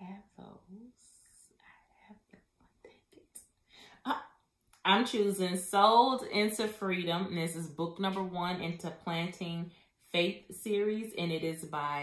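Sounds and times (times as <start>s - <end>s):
woman whispering: 0.0s - 3.4s.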